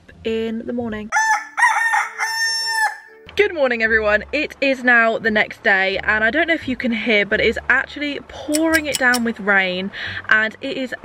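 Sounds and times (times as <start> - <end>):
rooster crowing: 1.1 - 3.2.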